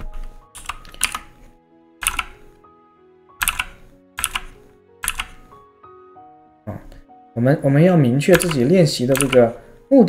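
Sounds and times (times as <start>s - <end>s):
computer keyboard keys clicking: 0.6s - 1.4s, 2.0s - 2.4s, 3.4s - 5.4s, 8.3s - 9.6s.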